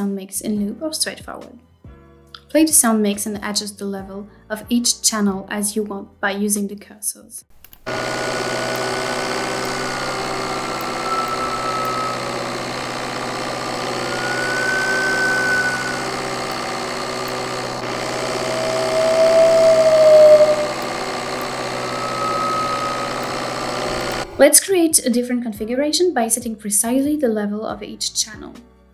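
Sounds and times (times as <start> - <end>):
engine running: 7.8 - 24.4
high turbo whistle: 7.9 - 24.4
low turbo whistle: 8.0 - 24.4.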